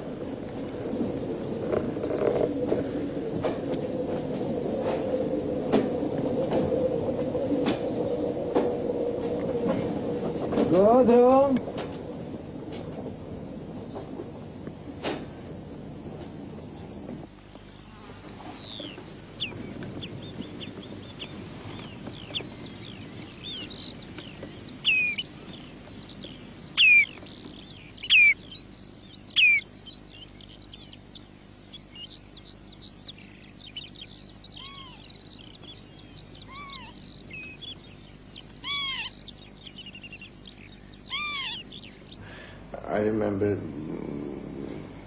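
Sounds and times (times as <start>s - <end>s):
lower arched bird calls: 0.0s - 12.6s, 17.2s - 45.0s
loud sharply falling bird calls: 18.1s - 43.3s
bird chirps and whistles: 23.5s - 25.3s, 26.6s - 27.3s, 28.0s - 29.9s, 30.5s - 35.1s, 36.0s - 42.0s.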